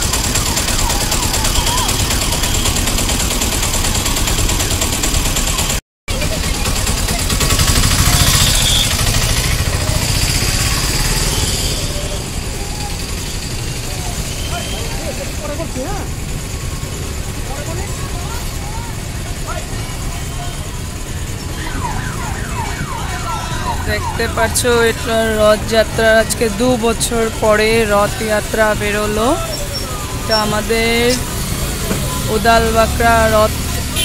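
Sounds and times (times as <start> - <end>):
traffic rumble: 0.0 - 34.0
distant voices: 6.2 - 34.0.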